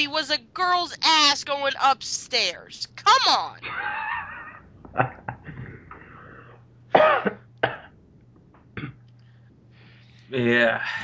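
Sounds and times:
person coughing: 0:07.0 - 0:07.9.

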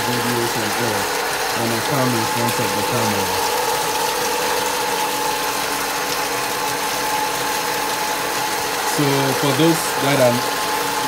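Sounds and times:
electric water pump hum: 0:00.0 - 0:11.0.

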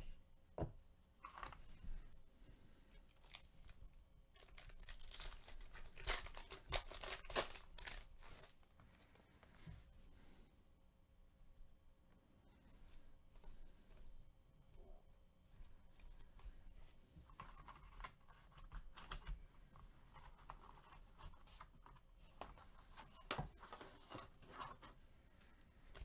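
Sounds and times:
foil wrapper tearing: 0:03.1 - 0:08.6.

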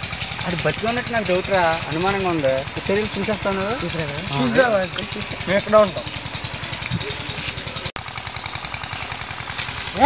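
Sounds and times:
engine chugging: 0:00.0 - 0:10.0.

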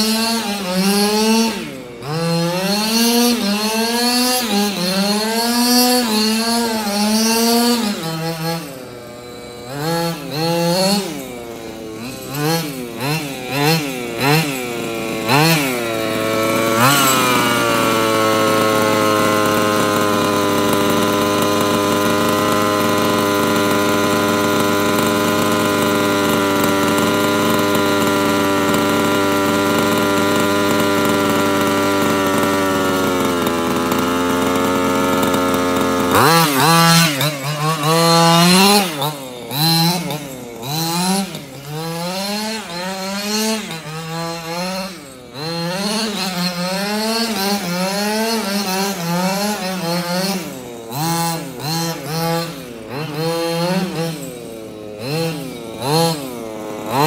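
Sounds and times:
two-stroke engine revving: 0:00.0 - 0:57.0.

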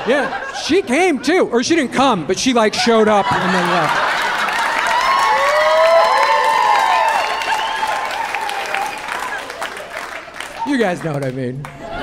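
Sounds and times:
audience laughing: 0:00.0 - 0:01.5, 0:02.6 - 0:05.2
audience clapping: 0:03.4 - 0:12.0.

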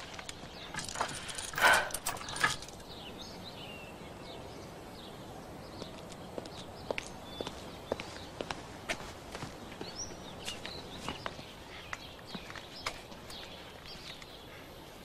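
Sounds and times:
faint birds chirping: 0:00.0 - 0:15.0.

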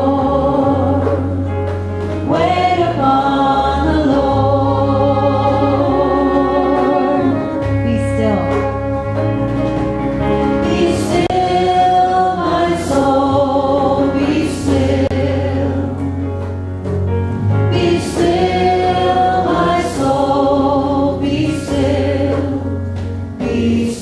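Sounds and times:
group singing slow hymn: 0:00.0 - 0:01.5, 0:02.1 - 0:07.5, 0:10.6 - 0:16.2, 0:17.7 - 0:24.0
piano: 0:00.0 - 0:24.0
woodwind: 0:04.9 - 0:11.2.

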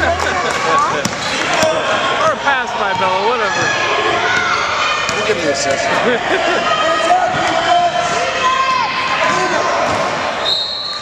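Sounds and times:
overlapping voices: 0:00.0 - 0:10.4.

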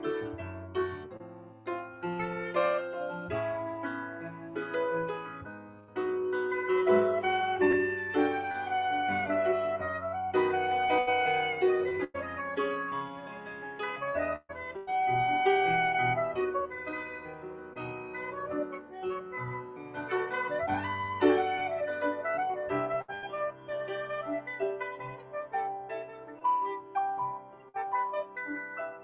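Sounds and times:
piano accompaniment: 0:00.0 - 0:29.0
soprano saxophone melody: 0:00.0 - 0:29.0.

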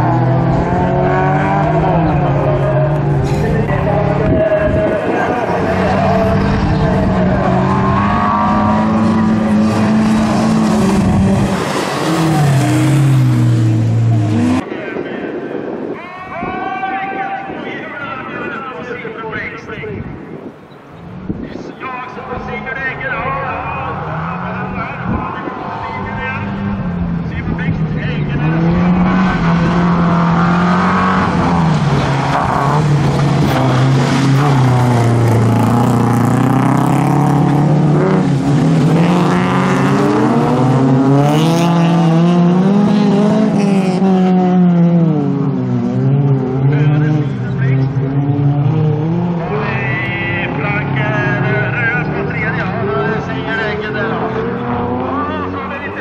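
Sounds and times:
race car engines revving: 0:00.0 - 0:16.0, 0:20.2 - 0:56.0.

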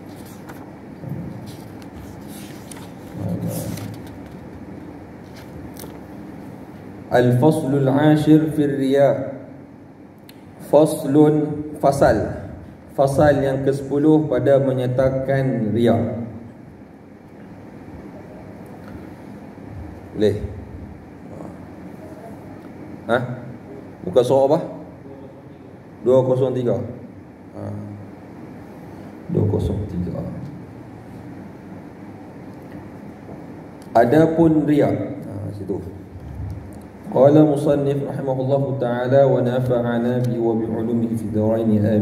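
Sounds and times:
book pages leafed through: 0:00.0 - 0:00.7, 0:01.4 - 0:04.3
man speaking: 0:34.0 - 0:36.0, 0:37.0 - 0:42.0
low background rumble: 0:35.4 - 0:42.0.

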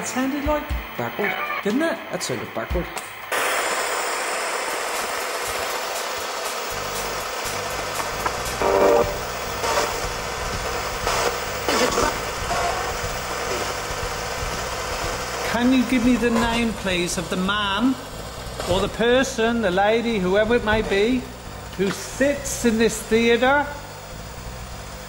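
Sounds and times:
white-noise static hiss: 0:00.0 - 0:25.0
low rumbling hum: 0:06.7 - 0:25.0
short bursts of sound: 0:08.1 - 0:10.2.

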